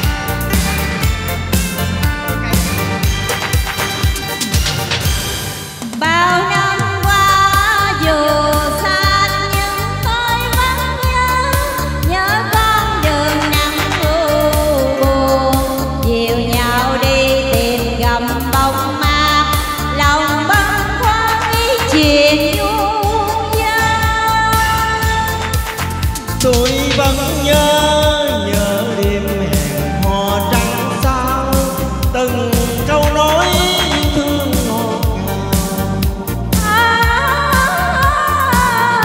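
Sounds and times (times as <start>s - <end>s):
instrumental accompaniment with beat: 0.0s - 39.0s
person singing with vibrato: 6.0s - 39.0s.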